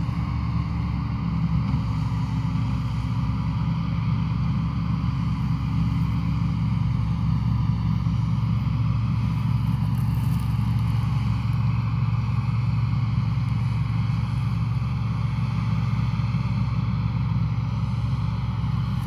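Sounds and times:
low engine drone: 0.0s - 19.0s.

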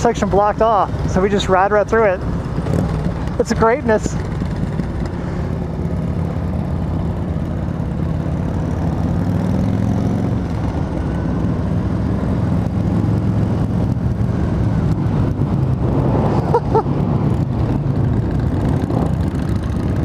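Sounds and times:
motorcycle engine drone: 0.0s - 20.0s
road and wind noise: 0.0s - 20.0s.

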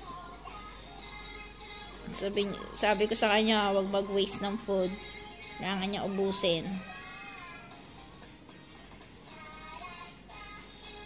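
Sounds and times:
cartoon music from a small speaker: 0.0s - 11.0s.

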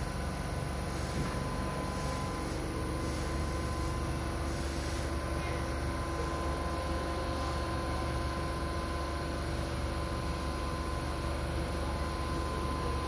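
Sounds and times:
electric train hum and whine: 0.0s - 13.0s.

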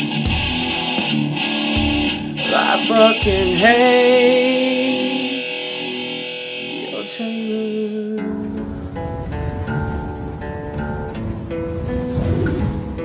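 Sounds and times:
guitar chord ringing: 0.0s - 13.0s
picked guitar melody: 0.0s - 13.0s
low rumble of noise: 8.4s - 13.0s.

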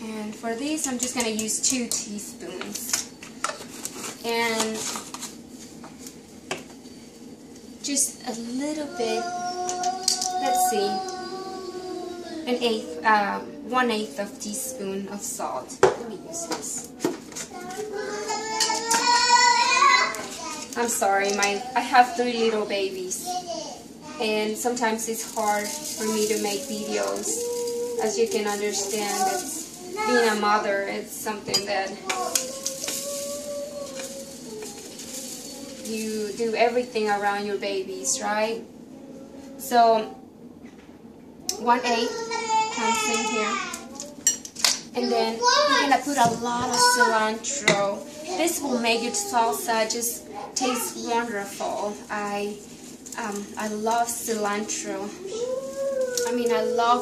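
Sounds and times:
baby cooing: 9.0s - 13.6s, 16.2s - 21.8s, 25.4s - 30.4s, 31.8s - 36.0s, 55.0s - 57.0s.

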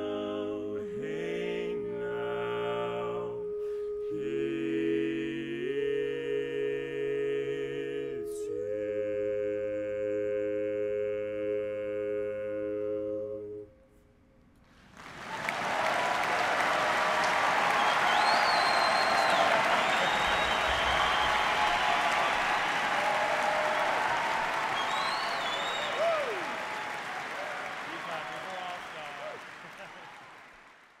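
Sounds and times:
audience applauding and cheering: 14.8s - 31.0s
people shouting: 21.0s - 26.6s.

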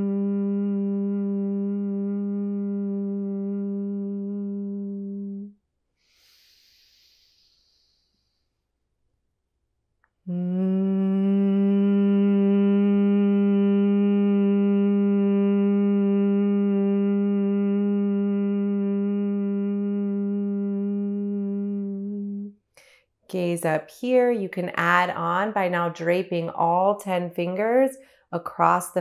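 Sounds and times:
woman humming a low note: 0.0s - 5.6s, 10.2s - 22.6s.

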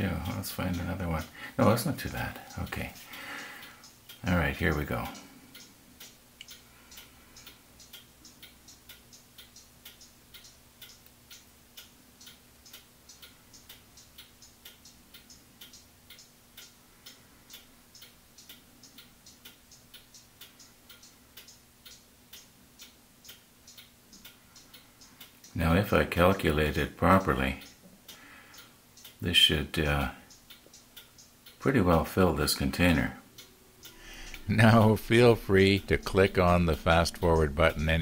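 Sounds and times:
faint low hum: 0.0s - 38.0s
small clock ticking: 0.0s - 38.0s.

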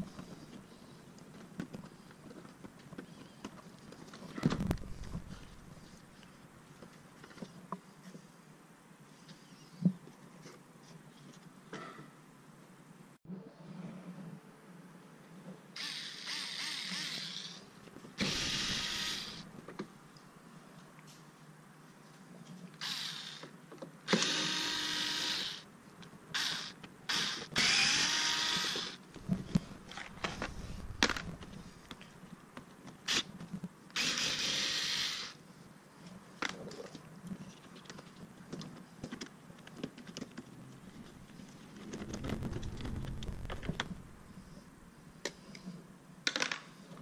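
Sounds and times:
cordless drill running: 15.8s - 17.6s, 18.2s - 19.4s, 24.2s - 25.6s, 26.4s - 29.0s.

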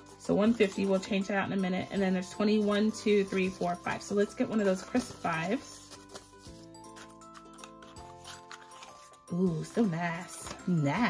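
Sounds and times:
banknotes rustling: 0.0s - 11.0s
quiet chord music: 0.0s - 11.0s.

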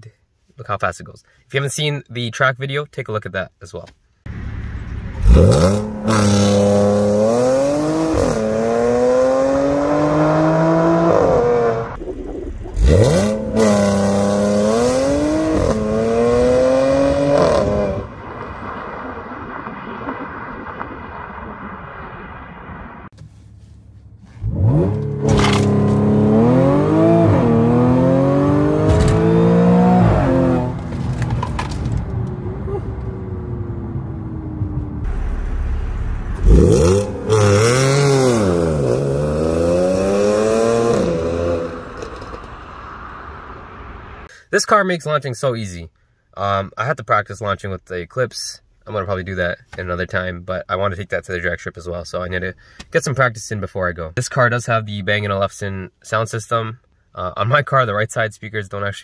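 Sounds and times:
car engine accelerating hard: 4.3s - 12.0s, 12.7s - 19.2s, 24.4s - 31.0s, 32.1s - 44.3s.

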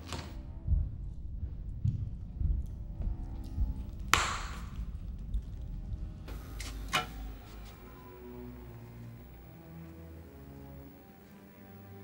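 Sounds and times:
steady low rumble: 0.3s - 11.0s.

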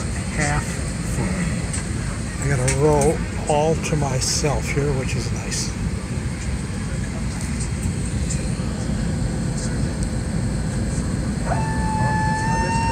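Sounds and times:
aircraft cabin low rumble: 0.0s - 12.9s
steady whine: 0.0s - 12.9s.

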